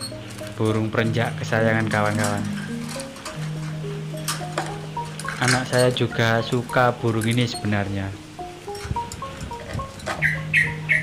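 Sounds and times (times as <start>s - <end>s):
slow melodic background music: 0.0s - 11.0s
bird harsh calls: 10.1s - 11.0s.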